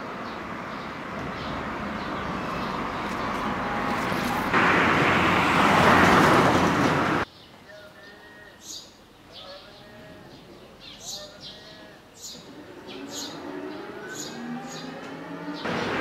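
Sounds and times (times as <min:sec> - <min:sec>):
road noise: 0:00.0 - 0:07.3, 0:10.6 - 0:16.0
pickup truck driving past: 0:00.5 - 0:07.2.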